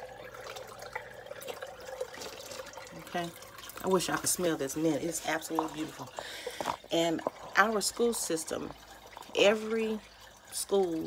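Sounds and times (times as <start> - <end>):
pump humming: 0.0 - 11.0
water trickling and dripping: 0.0 - 11.0.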